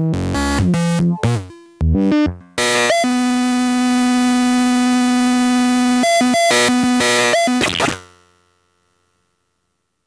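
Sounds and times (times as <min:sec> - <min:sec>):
steady buzzy synth tone: 0:01.2 - 0:08.5.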